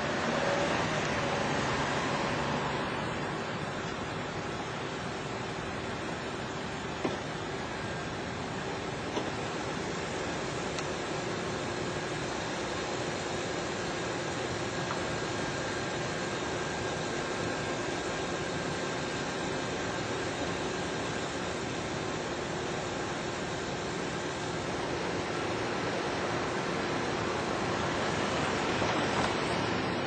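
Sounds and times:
traffic rushing: 0:00.0 - 0:04.3.

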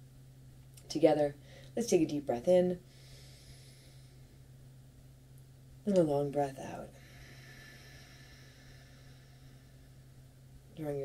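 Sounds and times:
low electrical hum: 0:00.0 - 0:11.0
faint hiss: 0:00.7 - 0:11.0.

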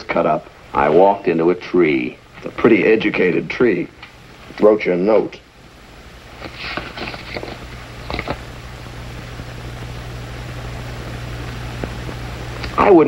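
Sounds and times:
low hum with hiss: 0:00.0 - 0:13.0
paper rustling: 0:06.4 - 0:08.5.

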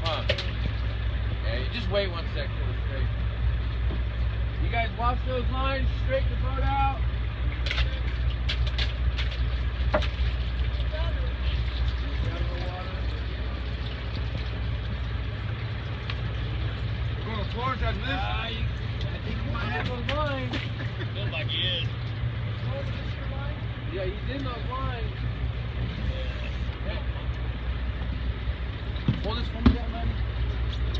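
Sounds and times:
boat engine droning: 0:00.0 - 0:30.9
people talking: 0:01.4 - 0:03.2, 0:04.6 - 0:07.0, 0:10.8 - 0:14.0, 0:17.2 - 0:22.0, 0:22.6 - 0:25.2, 0:25.9 - 0:27.5, 0:29.1 - 0:30.2.

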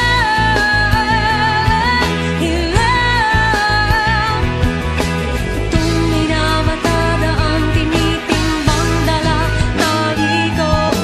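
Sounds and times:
full band playing pop-rock: 0:00.0 - 0:11.0.

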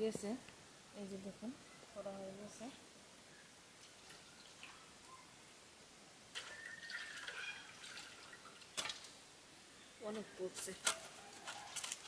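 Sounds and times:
faint small sounds: 0:00.0 - 0:12.0
water splashing into metal bowl: 0:06.3 - 0:09.2.

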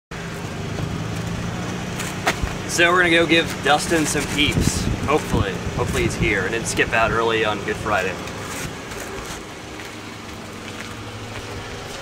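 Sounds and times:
car engine idling: 0:00.1 - 0:12.0.

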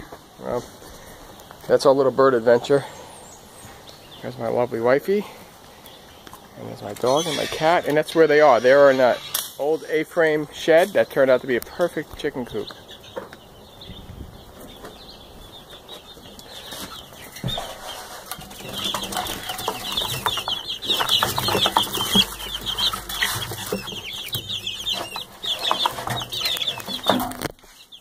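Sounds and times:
chicks peeping: 0:00.0 - 0:28.0
knocks and rustling: 0:16.7 - 0:27.7.

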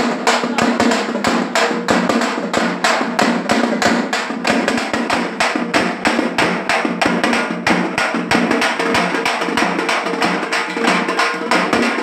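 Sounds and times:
frame drums beaten with sticks: 0:00.0 - 0:12.0
small barrel drum: 0:00.0 - 0:12.0.

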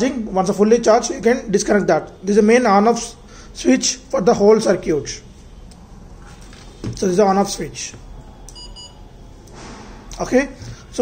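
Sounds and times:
double electronic beep: 0:08.5 - 0:09.0.

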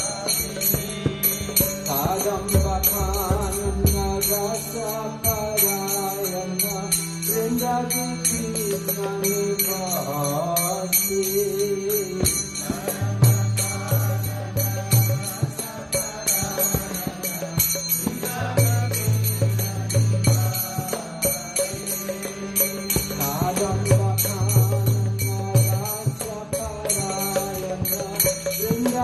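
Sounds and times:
hand cymbals beating: 0:00.0 - 0:29.0
person chanting: 0:01.8 - 0:29.0.

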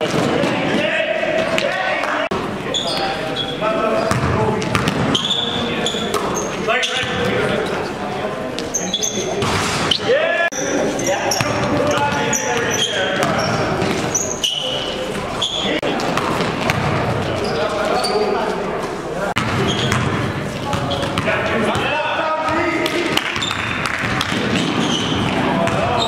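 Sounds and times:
players calling out: 0:00.0 - 0:26.0
sneakers squeaking on hardwood: 0:02.6 - 0:07.4, 0:08.5 - 0:18.6, 0:19.4 - 0:21.4, 0:23.2 - 0:26.0
basketball bouncing: 0:04.1 - 0:05.2, 0:15.9 - 0:17.4, 0:19.4 - 0:21.9, 0:22.5 - 0:26.0.

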